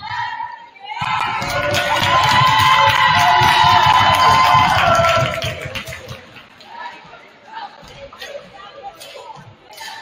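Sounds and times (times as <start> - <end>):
crowd cheering and yelling: 0.9 - 6.1.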